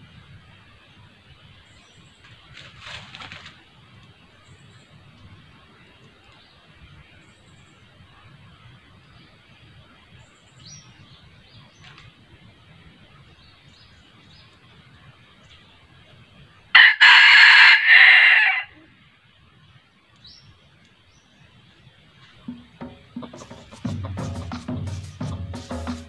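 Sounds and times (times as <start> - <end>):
rooster crowing: 16.7 - 18.8.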